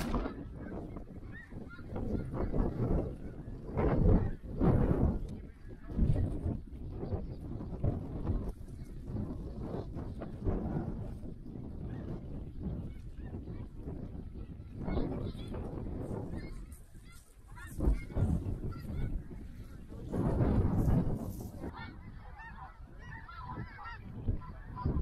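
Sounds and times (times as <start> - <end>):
wind buffeting microphone: 0.0 - 25.0
geese honking: 21.7 - 25.0.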